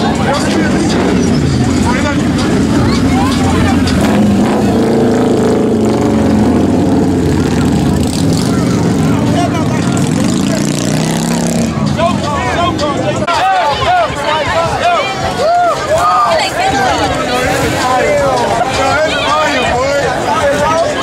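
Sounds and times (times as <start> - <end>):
motorcycles riding past: 0.2 - 13.1.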